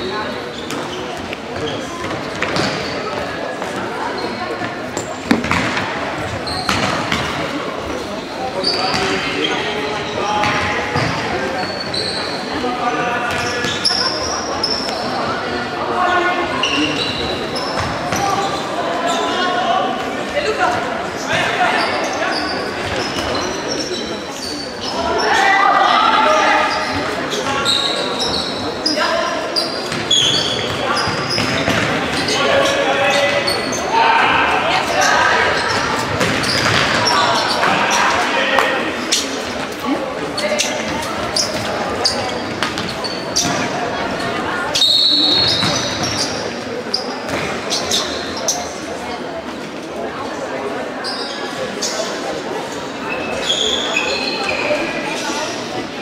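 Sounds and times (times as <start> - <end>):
shoe squeaks: 4.0 - 5.1, 6.2 - 7.1, 8.1 - 10.4, 11.0 - 12.6, 13.2 - 15.4, 16.0 - 19.6, 21.3 - 25.6, 26.3 - 34.0, 34.9 - 38.2, 40.4 - 43.8, 44.6 - 48.8, 51.0 - 55.6
referee's whistle: 44.8 - 45.9.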